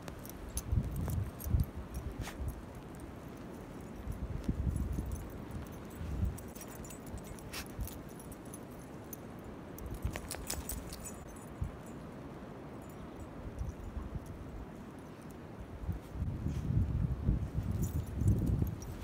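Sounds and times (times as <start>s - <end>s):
wind gusting on microphone: 0.0s - 8.5s, 15.5s - 19.0s
dogs bounding through snow: 0.0s - 9.2s, 9.8s - 11.4s
dog collar tags jingling: 0.0s - 15.4s, 17.6s - 19.0s.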